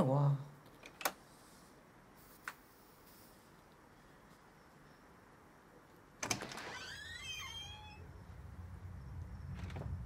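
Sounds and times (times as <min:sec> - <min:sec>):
door hinge creaking: 0:06.2 - 0:08.2
low rumble: 0:07.8 - 0:10.0.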